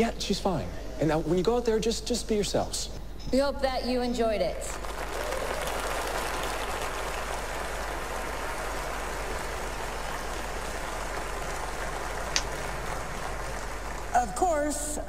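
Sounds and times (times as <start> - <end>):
audience applauding: 4.7 - 14.6.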